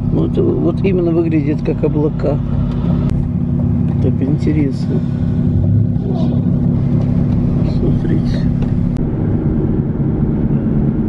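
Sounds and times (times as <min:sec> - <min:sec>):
car engine drone: 0:00.0 - 0:11.0
road noise: 0:00.0 - 0:11.0.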